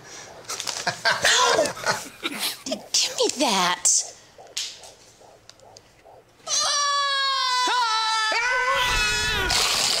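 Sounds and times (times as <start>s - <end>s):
woman screaming: 6.5s - 9.5s.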